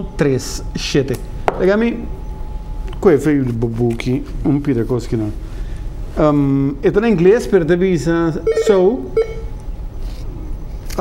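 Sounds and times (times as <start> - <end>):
low steady studio hum: 0.0 - 11.0.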